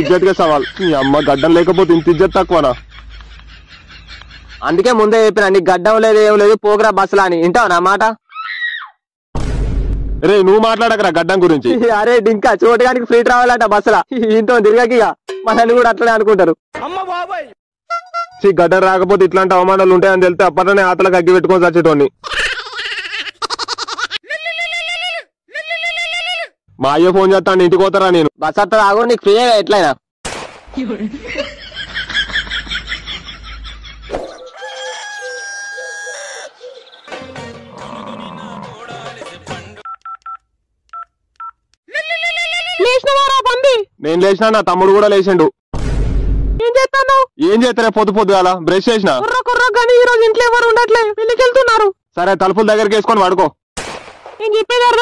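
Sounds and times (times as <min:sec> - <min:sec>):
low booming whoosh: 0:09.4 - 0:10.4, 0:45.8 - 0:46.6
rooster crowing: 0:34.3 - 0:37.0.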